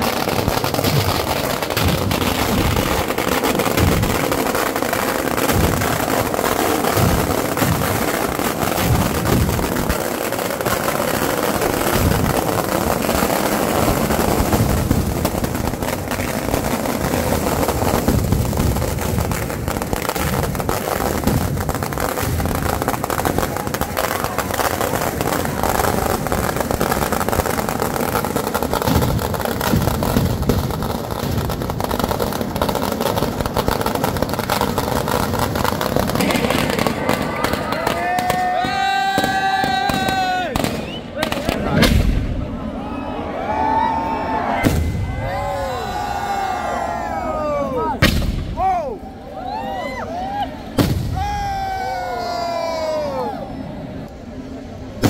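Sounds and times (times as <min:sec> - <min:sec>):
firecrackers bursting: 0:00.0 - 0:42.8, 0:43.7 - 0:49.3, 0:50.5 - 0:52.0.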